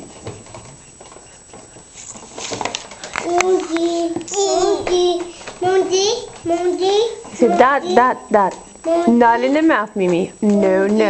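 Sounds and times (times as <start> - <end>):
marker tapping on paper: 0.0 - 11.0.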